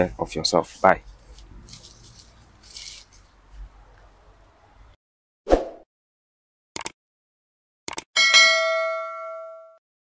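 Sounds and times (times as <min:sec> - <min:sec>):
bright bell ding: 0:08.2 - 0:09.8.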